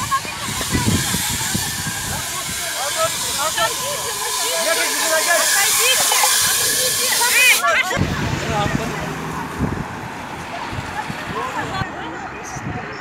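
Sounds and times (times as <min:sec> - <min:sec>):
steady hiss of burning engine: 0:00.0 - 0:11.8
crowd talking: 0:00.0 - 0:13.0.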